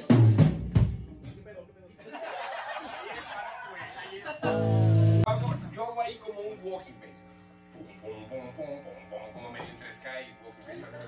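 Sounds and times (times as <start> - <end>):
drum kit hits: 0.0 - 1.4
low electric bass note: 4.4 - 5.8.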